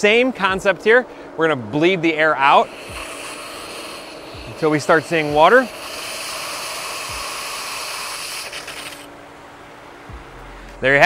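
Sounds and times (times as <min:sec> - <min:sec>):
faint steady pump hum: 0:00.0 - 0:11.0
air hissing from valve: 0:02.1 - 0:09.1.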